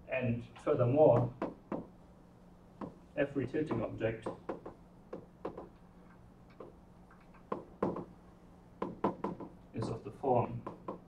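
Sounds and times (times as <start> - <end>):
chalk tapping on blackboard: 3.7 - 5.7, 7.5 - 8.1, 8.8 - 10.0, 10.6 - 11.0.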